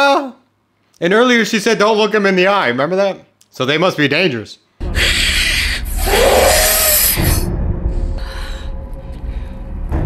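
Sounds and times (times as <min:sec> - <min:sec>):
creature screeching hiss: 0:05.0 - 0:07.5.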